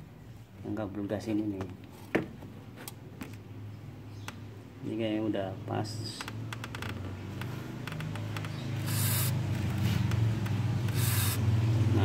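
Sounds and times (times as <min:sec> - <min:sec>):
steady low hum: 0:01.8 - 0:12.0
aerosol spray hissing: 0:08.8 - 0:09.4, 0:10.9 - 0:11.4.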